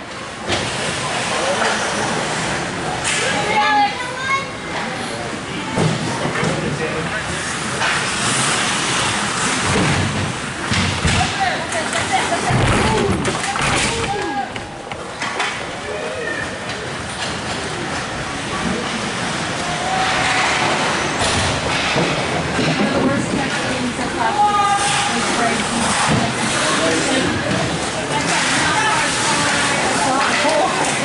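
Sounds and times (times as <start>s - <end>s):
hockey sticks and puck clacking: 24.7s - 31.0s.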